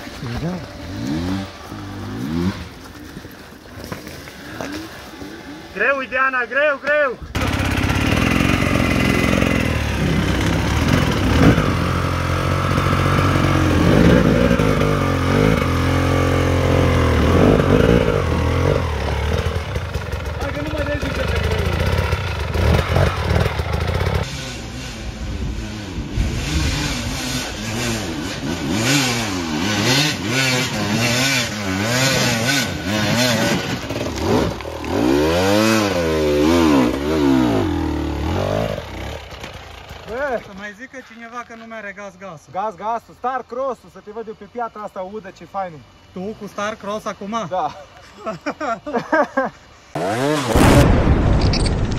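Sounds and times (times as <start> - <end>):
dirt bike engines revving: 0.0 - 51.1.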